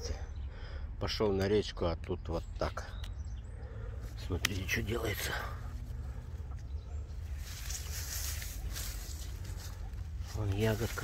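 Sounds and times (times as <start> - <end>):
steady low rumble: 0.0 - 11.0
leaves rustling: 4.0 - 11.0.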